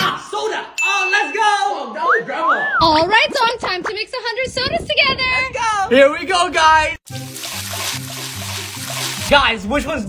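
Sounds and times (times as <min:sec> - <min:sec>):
soda pouring and fizzing: 0:07.1 - 0:09.4.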